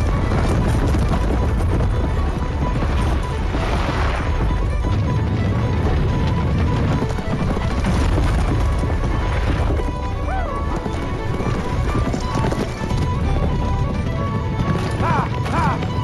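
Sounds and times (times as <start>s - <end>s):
chariot rumbling: 0.0s - 16.0s
film score music: 0.0s - 16.0s
galloping hooves: 0.0s - 16.0s.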